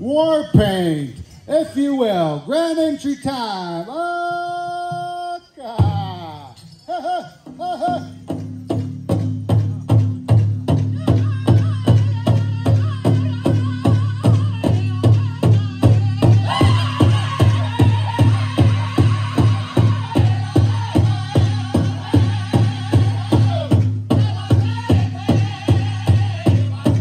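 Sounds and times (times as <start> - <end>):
big drum steady beat: 7.4 - 27.0
group singing high-pitched: 15.7 - 27.0.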